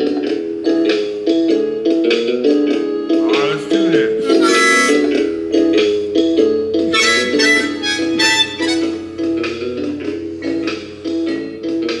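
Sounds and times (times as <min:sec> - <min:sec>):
recorded backing beat from boombox: 0:00.0 - 0:12.0
harmonica chordal phrases: 0:03.2 - 0:05.6, 0:06.9 - 0:09.2.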